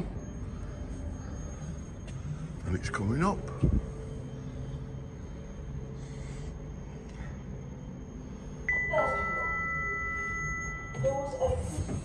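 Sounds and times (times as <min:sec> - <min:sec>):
lift arrival two-tone chime: 0:08.5 - 0:11.6.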